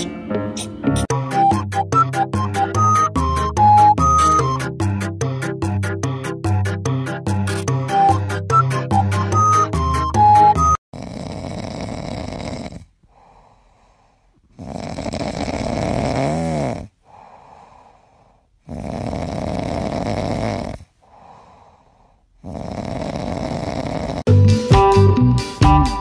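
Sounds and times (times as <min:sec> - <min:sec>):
music: 0:00.0 - 0:10.8, 0:24.3 - 0:26.0
cat snoring: 0:10.9 - 0:24.3.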